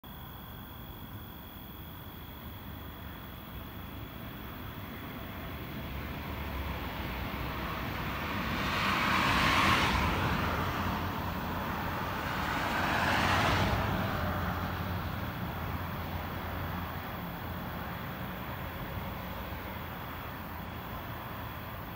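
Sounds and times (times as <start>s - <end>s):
road vehicles passing: 0.1s - 21.9s.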